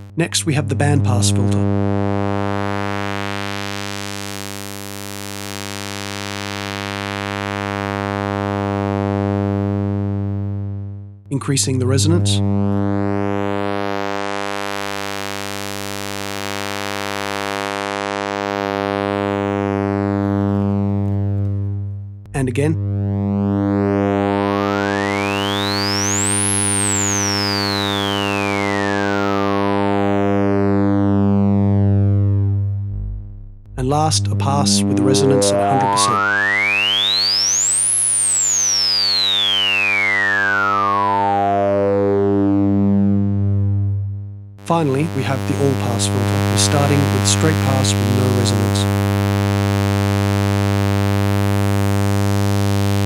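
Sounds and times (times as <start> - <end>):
low synth buzz: 0.0 - 11.2, 12.4 - 44.8
filtered sawtooth synth tone: 22.8 - 43.7
sweeping resonant filter tone: 32.6 - 37.8.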